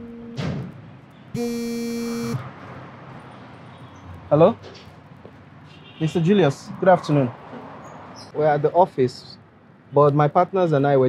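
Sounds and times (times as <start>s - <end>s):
mobile phone ringing: 0.0s - 0.4s, 1.4s - 2.4s.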